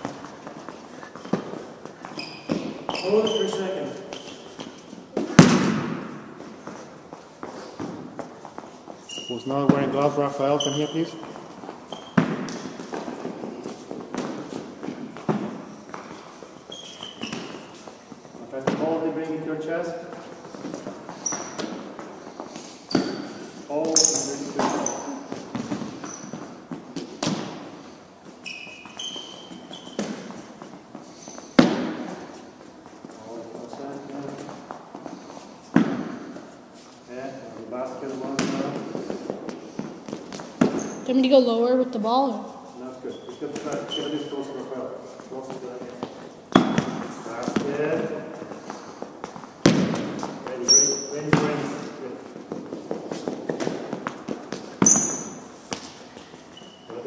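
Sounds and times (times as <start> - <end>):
ball thudding in echoing hall: 0.0 - 33.4, 34.0 - 36.7, 37.7 - 41.8, 43.3 - 57.0.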